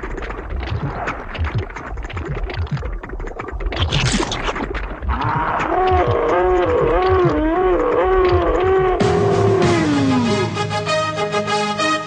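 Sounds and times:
cartoon creature wordless cry: 5.2s - 10.3s
soundtrack music with held notes: 9.0s - 12.0s.

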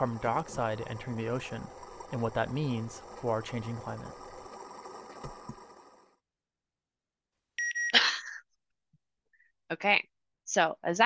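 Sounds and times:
steady background sound: 0.0s - 6.2s.

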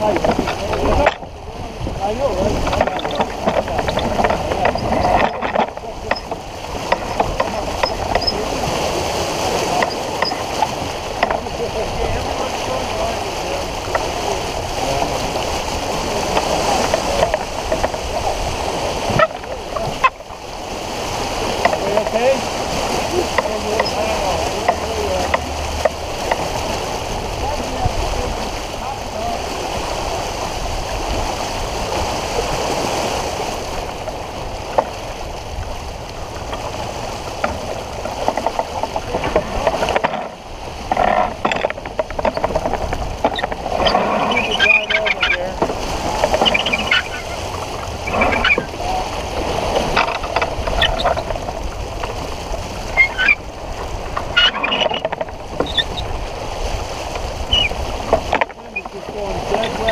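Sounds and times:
water rushing past hull: 0.0s - 59.9s
wind buffeting microphone: 0.0s - 59.9s.

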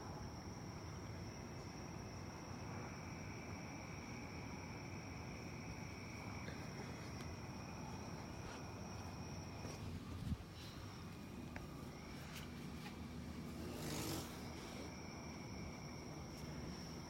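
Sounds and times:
high insect calls: 0.0s - 17.0s.

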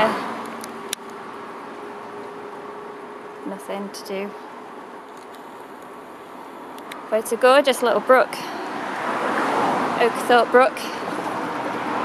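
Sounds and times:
road traffic hiss: 0.0s - 12.0s.

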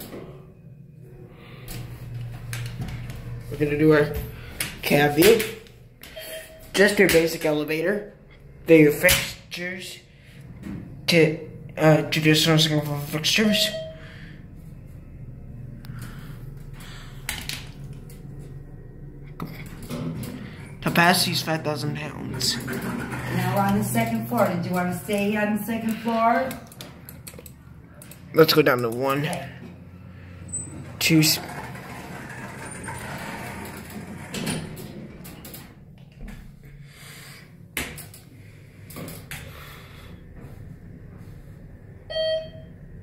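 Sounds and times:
elevator hum: 0.0s - 43.0s.

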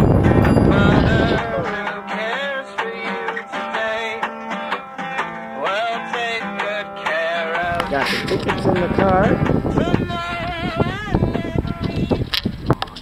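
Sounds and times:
sliding melody line: 0.0s - 12.3s
song with plucked strings: 0.0s - 12.3s.

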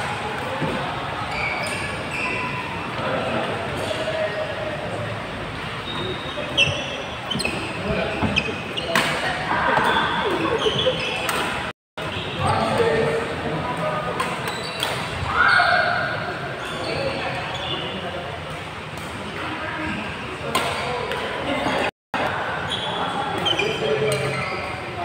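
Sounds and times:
players' voices: 0.0s - 25.0s
shoes squeaking on court floor: 0.6s - 4.5s, 5.7s - 13.2s, 14.2s - 15.2s, 16.4s - 18.0s, 22.6s - 25.0s.

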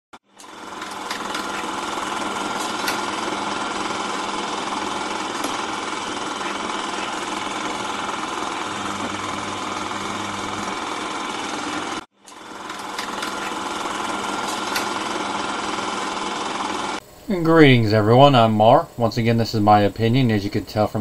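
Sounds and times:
film projector rattling: 0.3s - 17.0s.

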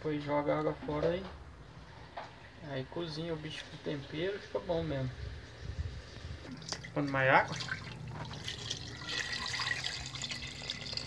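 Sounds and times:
water pouring into a metal pot: 6.6s - 11.0s.

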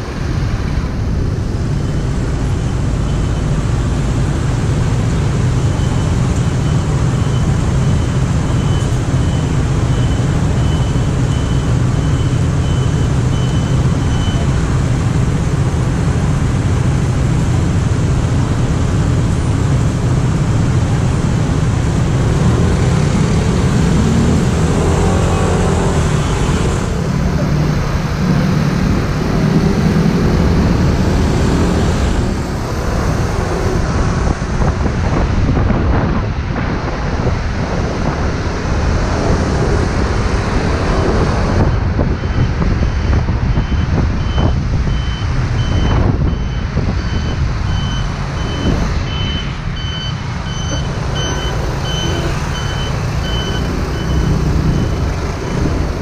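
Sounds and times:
road and wind noise: 0.0s - 56.0s
truck warning beeper: 1.7s - 4.1s, 5.2s - 15.0s, 41.6s - 56.0s.

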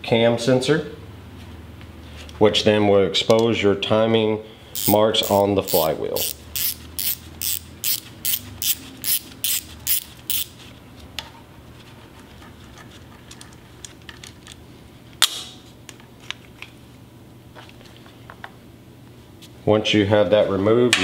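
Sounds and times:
ratchet wrench clicking: 4.8s - 10.5s.

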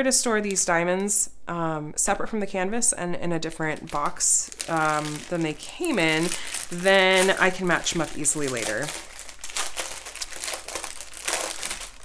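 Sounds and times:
plastic packets crinkling: 3.7s - 12.0s.

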